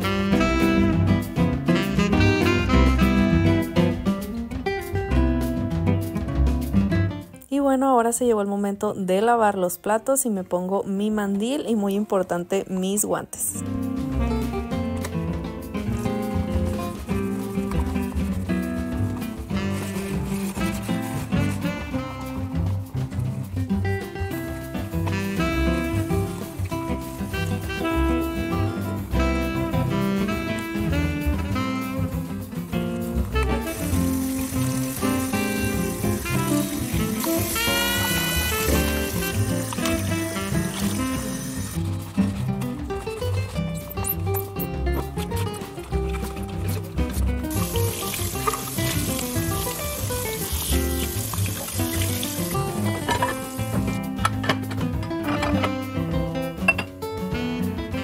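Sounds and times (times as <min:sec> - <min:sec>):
background music with steady beat: 0:00.0 - 0:07.5, 0:13.5 - 0:58.0
tap water running: 0:15.8 - 0:23.3, 0:24.4 - 0:28.2, 0:29.6 - 0:54.0
dishwashing at a steel sink: 0:15.8 - 0:23.4, 0:30.2 - 0:55.7.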